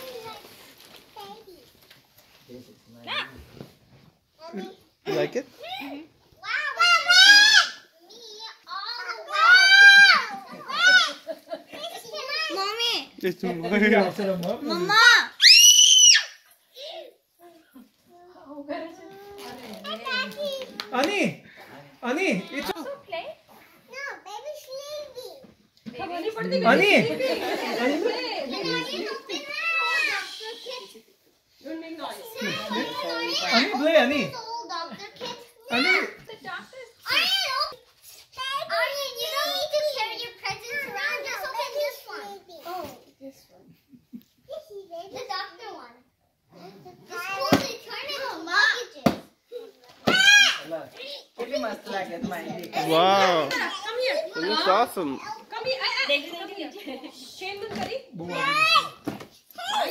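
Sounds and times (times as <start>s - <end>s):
children talking and calling out: 0.0s - 2.1s, 4.3s - 13.3s, 14.6s - 21.3s, 22.2s - 59.9s
children's high-pitched squeals: 15.4s - 16.5s, 29.7s - 30.9s
children chattering: 26.1s - 31.1s, 32.0s - 37.8s, 46.5s - 59.0s.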